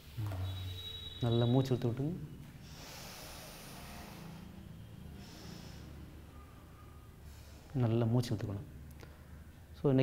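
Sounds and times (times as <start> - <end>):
person breathing through nose: 2.6 - 4.6.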